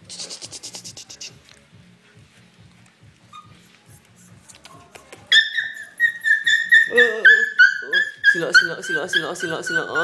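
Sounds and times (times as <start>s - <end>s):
puppy whining: 3.2s - 4.4s, 5.3s - 10.0s.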